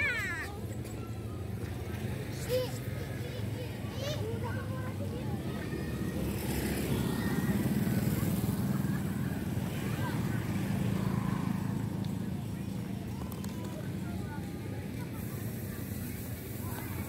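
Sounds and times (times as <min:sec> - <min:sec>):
voices of people: 0:00.0 - 0:17.0
motorcycle engine passing by: 0:05.5 - 0:16.3.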